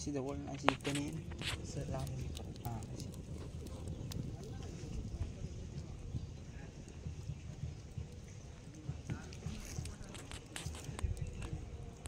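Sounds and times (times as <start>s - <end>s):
fire popping: 0.0s - 12.0s
wood fire crackling: 0.0s - 12.0s.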